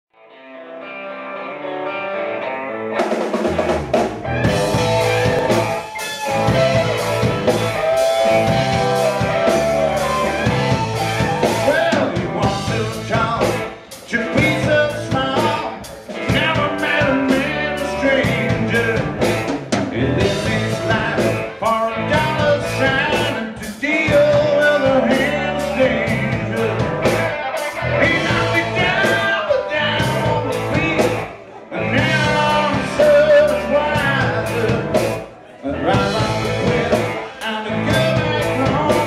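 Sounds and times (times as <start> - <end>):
rock band playing: 0.2 - 39.0.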